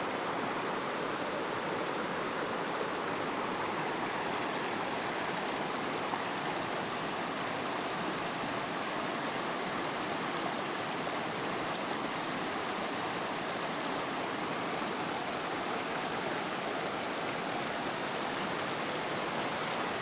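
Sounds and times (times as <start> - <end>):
river rushing over stones: 0.0 - 20.0.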